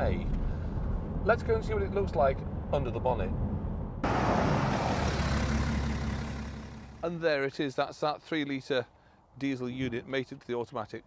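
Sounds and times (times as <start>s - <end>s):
diesel engine idling: 4.7s - 7.1s.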